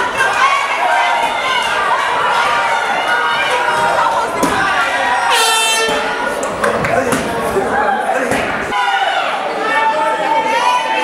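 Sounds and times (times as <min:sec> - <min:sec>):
crowd voices: 0:00.0 - 0:11.0
air horn blast: 0:05.3 - 0:06.3.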